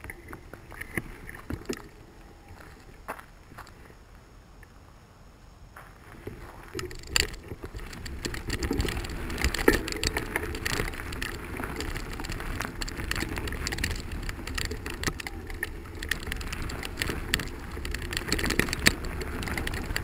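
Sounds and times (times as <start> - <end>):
bicycle tyres crunching on gravel: 0.0 - 4.2, 5.8 - 20.0
low rolling rumble: 6.2 - 20.0
bicycle rattling over bumps: 6.3 - 20.0.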